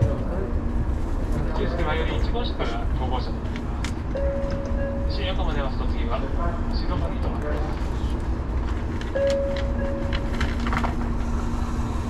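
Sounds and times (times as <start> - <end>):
low rumble of train: 0.0 - 12.0.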